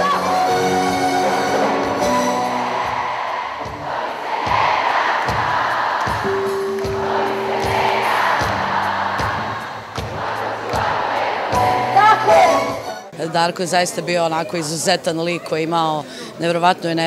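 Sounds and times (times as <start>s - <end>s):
live band playing: 0.0s - 3.1s, 6.2s - 10.2s, 11.6s - 13.2s
audience singing along: 1.4s - 12.0s
steady drum beat: 1.6s - 12.2s.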